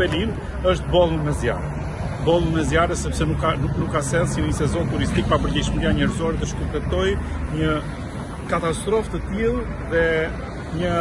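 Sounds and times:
cars passing: 0:00.0 - 0:11.0
man talking: 0:00.0 - 0:11.0.

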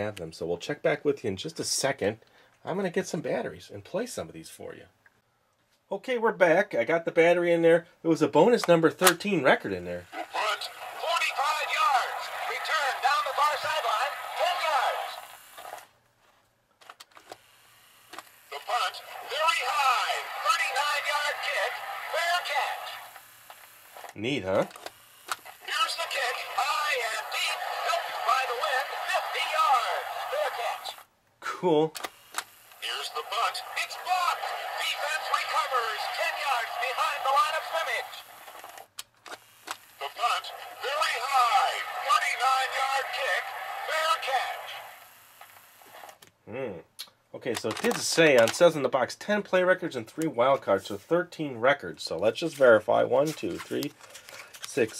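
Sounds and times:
recorded announcement: 0:05.9 - 0:15.4, 0:18.5 - 0:23.2, 0:24.2 - 0:24.7, 0:25.6 - 0:31.9, 0:32.8 - 0:38.4, 0:40.0 - 0:45.1, 0:47.4 - 0:53.9
toy record player hiss: 0:09.8 - 0:15.9, 0:17.2 - 0:31.1, 0:32.0 - 0:46.2.

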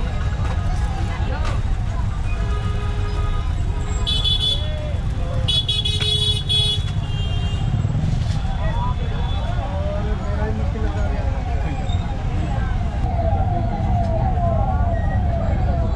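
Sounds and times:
faint voices: 0:00.0 - 0:05.9, 0:06.9 - 0:15.9
traffic rumble: 0:00.0 - 0:15.9.

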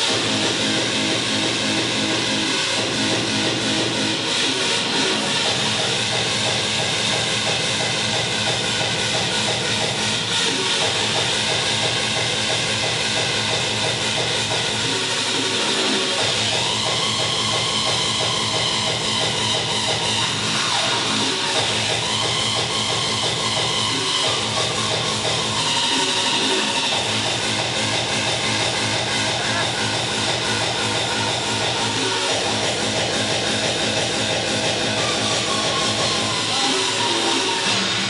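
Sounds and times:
loud drum and bass music: 0:00.0 - 0:38.0.

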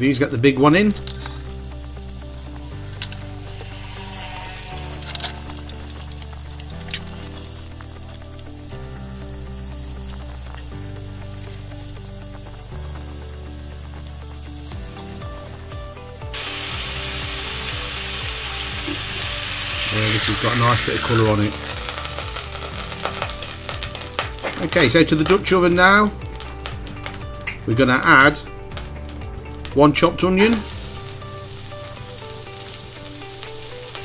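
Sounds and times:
background music with bass: 0:00.0 - 0:34.0
meat sizzling in hot oil: 0:00.0 - 0:34.0.

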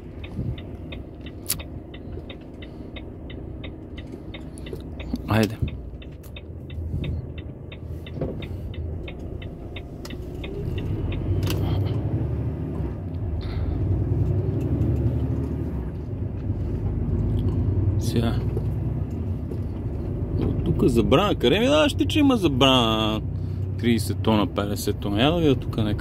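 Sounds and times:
diesel engine rumble: 0:00.0 - 0:26.0
turn signal ticking: 0:00.0 - 0:26.0.

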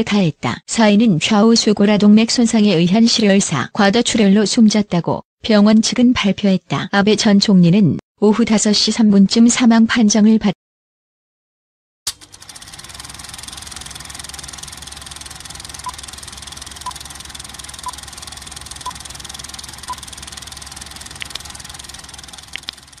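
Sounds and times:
film projector rattling whir: 0:12.1 - 0:23.0
short clicks: 0:15.6 - 0:23.0.

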